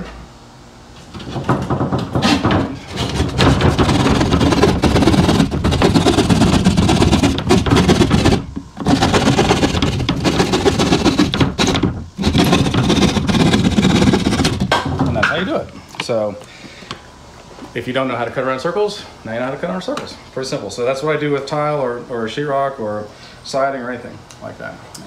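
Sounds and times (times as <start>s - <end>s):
jab saw sawing drywall: 1.2s - 15.6s.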